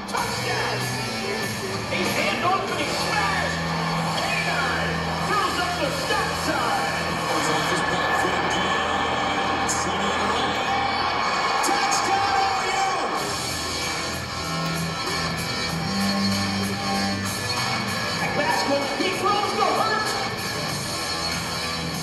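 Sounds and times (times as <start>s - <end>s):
sports announcer commentating: 0.0s - 13.4s, 18.2s - 20.4s.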